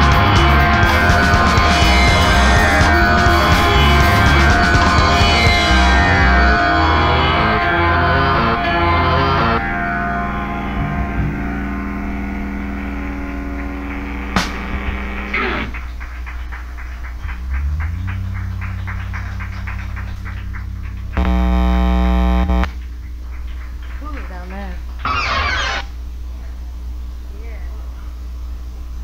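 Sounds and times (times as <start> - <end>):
loud buzzy held tone: 0.0 - 16.0, 17.2 - 23.0, 24.9 - 27.3
electric guitars ringing: 0.0 - 23.2, 24.5 - 26.3
amplifier hum: 0.0 - 29.0.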